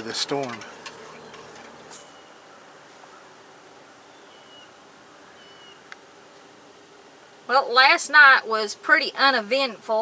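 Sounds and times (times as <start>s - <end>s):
faint steady hiss: 0.0s - 10.0s
short high bird calls: 1.0s - 3.4s, 4.0s - 5.9s.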